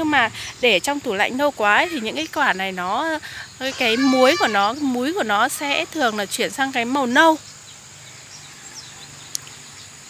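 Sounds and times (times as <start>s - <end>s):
insects droning: 0.0s - 10.0s
faint bird chirps: 0.4s - 10.0s.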